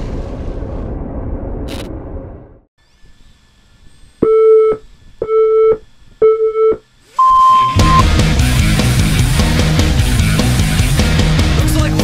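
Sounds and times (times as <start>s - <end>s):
countdown beeps: 4.2s - 8.1s
higher-pitched go tone: 7.2s - 8.2s
loud rock music: 7.8s - 12.0s.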